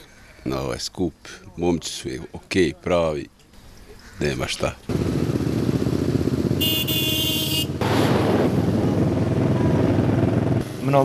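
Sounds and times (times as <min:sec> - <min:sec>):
motorcycle engines running: 0:04.8 - 0:11.0.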